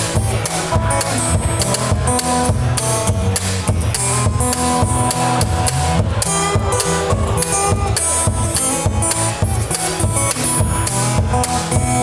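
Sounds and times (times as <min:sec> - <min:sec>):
acoustic guitar playing: 0:00.0 - 0:12.0
steady percussive beat: 0:00.0 - 0:12.0.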